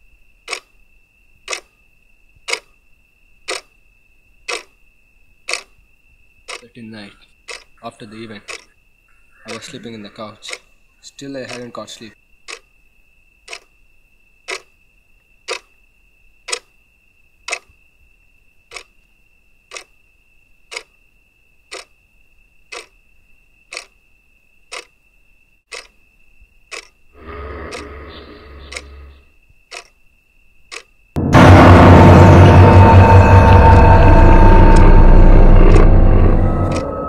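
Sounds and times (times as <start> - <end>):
clock ticking: 0.5 - 0.7, 1.5 - 1.7, 2.5 - 2.7, 3.5 - 3.7, 4.5 - 4.7, 5.5 - 5.7, 6.5 - 6.7, 7.5 - 7.8, 8.4 - 8.7, 10.4 - 10.7, 11.4 - 11.8, 12.5 - 12.7, 13.5 - 13.7, 14.5 - 14.7, 15.5 - 15.7, 16.5 - 16.7, 17.5 - 17.7, 18.7 - 18.9, 19.7 - 19.9, 20.7 - 21.0, 21.7 - 21.9, 22.7 - 22.9, 23.7 - 24.0, 24.7 - 24.9, 25.7 - 26.0, 26.7 - 27.0, 28.6 - 28.9, 29.7 - 30.0, 30.7 - 30.9
rough noise: 31.2 - 37.0
steady high-pitched whine: 31.2 - 37.0.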